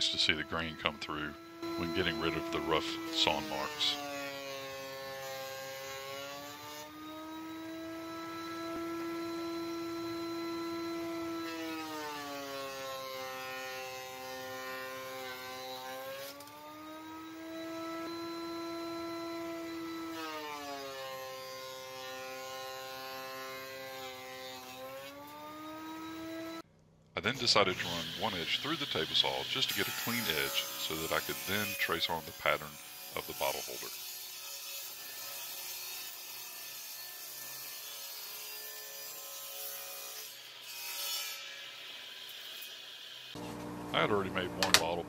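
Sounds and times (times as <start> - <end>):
thickness planer whining: 0.0 - 26.6, 27.3 - 34.0.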